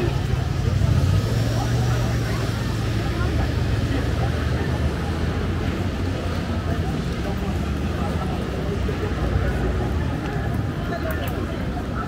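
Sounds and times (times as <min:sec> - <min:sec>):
crowd chatter: 0:00.0 - 0:12.0
road traffic rumble: 0:00.0 - 0:12.0.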